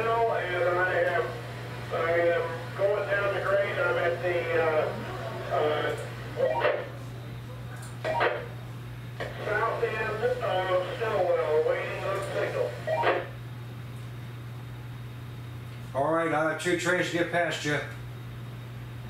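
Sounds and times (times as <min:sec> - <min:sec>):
radio crackling bursts: 0:00.0 - 0:07.0, 0:08.0 - 0:08.5, 0:09.2 - 0:13.4
voices over two-way radio: 0:00.0 - 0:07.0, 0:08.0 - 0:08.5, 0:09.2 - 0:13.3
steady low hum: 0:00.0 - 0:19.0.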